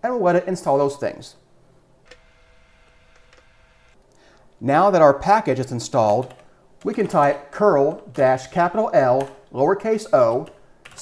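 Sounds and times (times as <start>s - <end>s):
faint steady whine: 1.5s - 4.6s.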